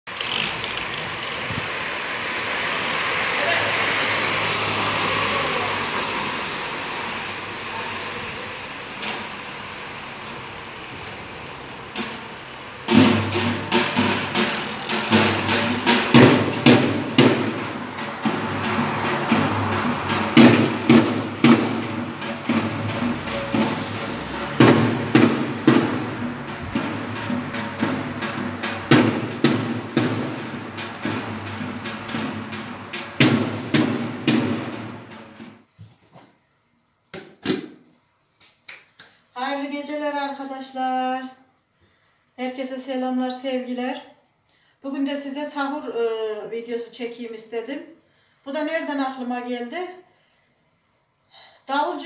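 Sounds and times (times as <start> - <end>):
car passing: 0.1 - 35.7
bass drum beating: 11.5 - 35.6.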